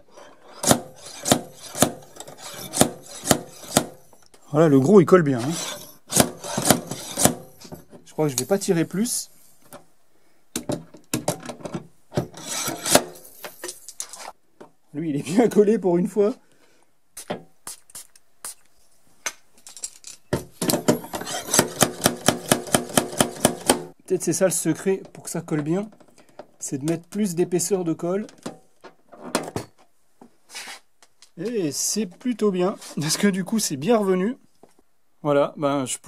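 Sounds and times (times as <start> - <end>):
dent puller rasping scrapes: 0.0 - 4.0, 5.3 - 7.8, 12.3 - 13.2, 21.0 - 23.7.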